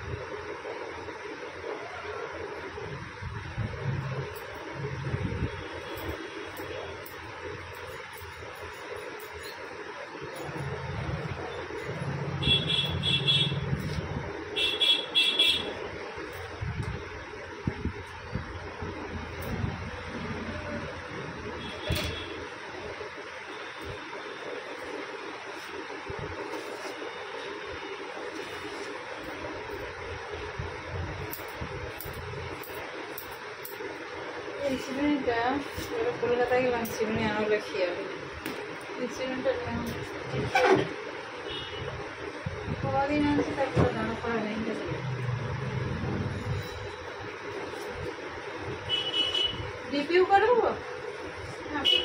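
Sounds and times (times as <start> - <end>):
road traffic rumble: 0.0 - 52.0
car horn beeping: 12.4 - 13.8, 14.6 - 15.8, 41.4 - 42.0, 48.8 - 49.7, 51.8 - 52.0.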